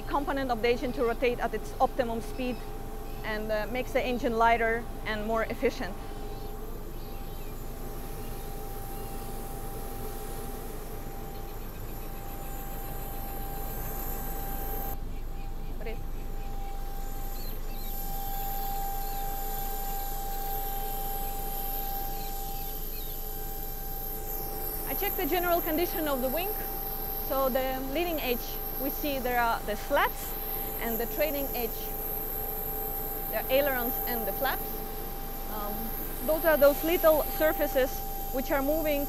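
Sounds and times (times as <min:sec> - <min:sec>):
machinery drone with whine: 0:00.0 - 0:39.0.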